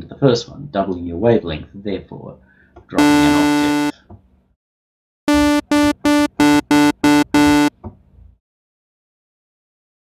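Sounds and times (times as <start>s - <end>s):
buzzy synthesizer staccato notes: 3.0s - 3.9s, 5.3s - 7.7s.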